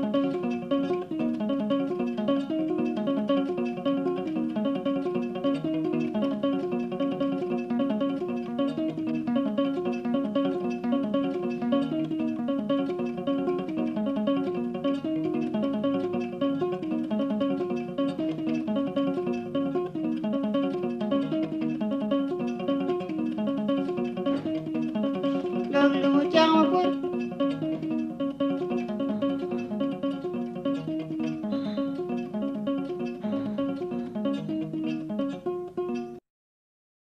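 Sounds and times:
plucked string instrument melody: 0.0s - 36.2s.

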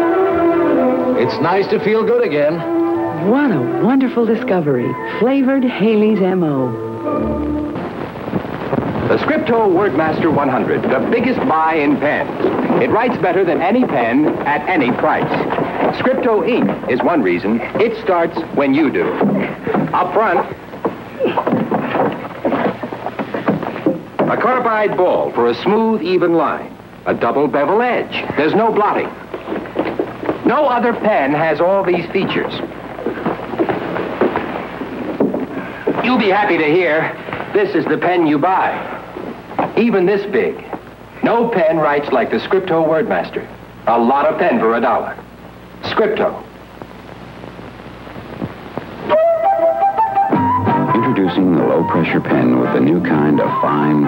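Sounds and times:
low hiss and hum: 0.0s - 54.0s
commercial jingle melody: 6.2s - 7.8s.

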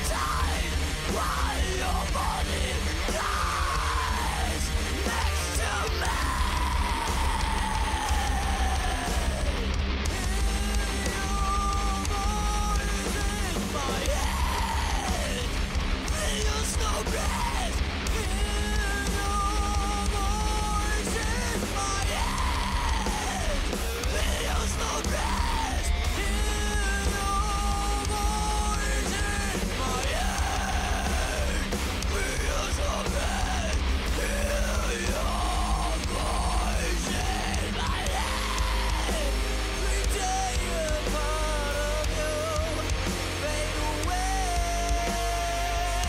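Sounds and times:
distorted electric guitars and bass: 0.0s - 46.0s
harsh yelled vocals: 0.0s - 46.0s
metalcore song: 0.0s - 46.0s.

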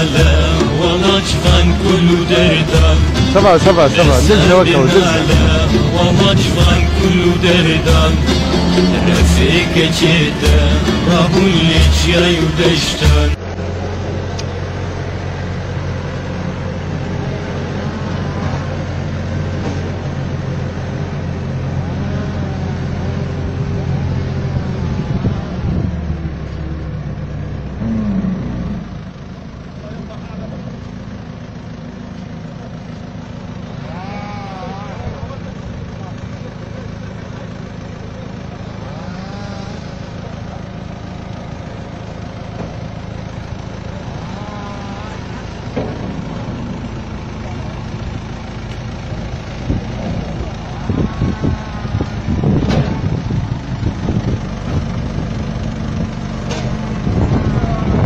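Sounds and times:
large vehicle engine humming: 0.0s - 58.0s.

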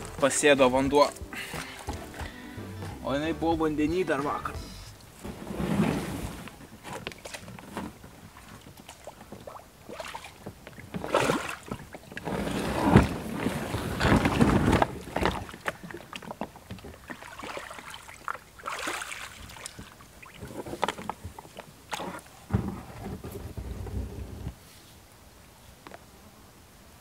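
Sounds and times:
kayak scraping over stones: 0.0s - 2.4s, 3.0s - 17.2s, 19.4s - 24.6s.

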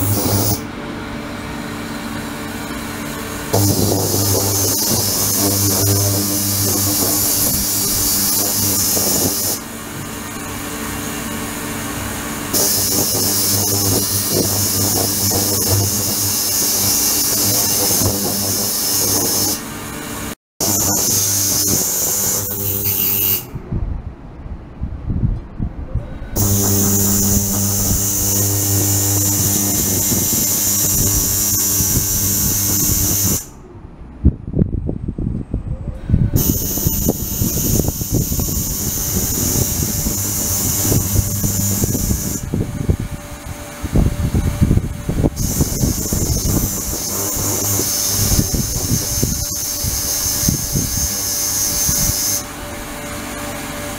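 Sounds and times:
ultrasonic cleaner hum: 0.0s - 23.0s, 26.1s - 33.8s, 36.4s - 53.9s.

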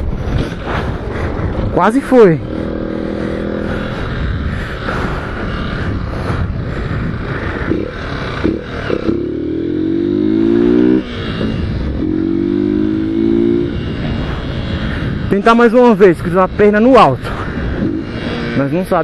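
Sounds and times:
motorcycle engine accelerating: 0.0s - 19.0s
wind rush on microphone: 0.0s - 19.0s.

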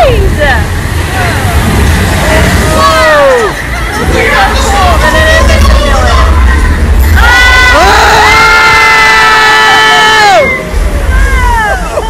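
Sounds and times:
low rumble: 0.0s - 12.0s
people crying out: 2.4s - 12.0s.

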